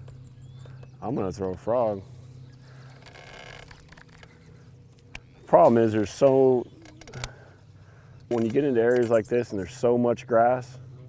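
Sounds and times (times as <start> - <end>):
low hum: 0.0 - 11.0
fishing reel whirring: 2.7 - 7.5.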